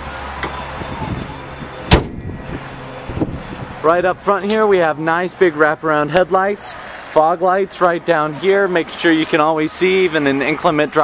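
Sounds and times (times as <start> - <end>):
car hood slamming shut: 1.9 - 2.3.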